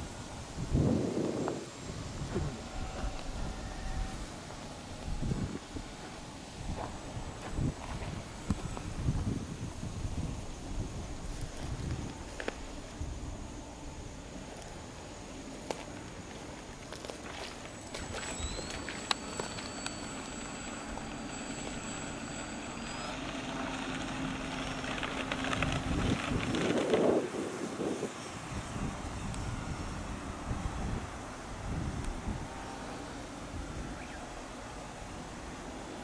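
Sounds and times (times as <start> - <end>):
model plane motor and propeller: 0.0 - 15.4, 16.0 - 36.0.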